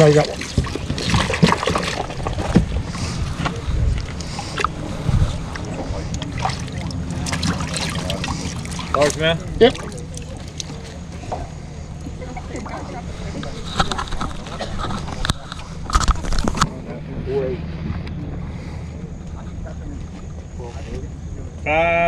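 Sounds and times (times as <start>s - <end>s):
sharp knocks or splashes: 0.0s - 2.9s, 5.5s - 11.5s
background voices: 0.0s - 21.7s
steady low hum: 0.0s - 22.0s.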